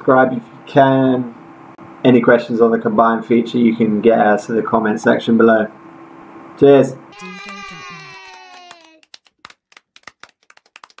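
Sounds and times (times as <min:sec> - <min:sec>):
people clapping out of step: 0:07.2 - 0:11.0.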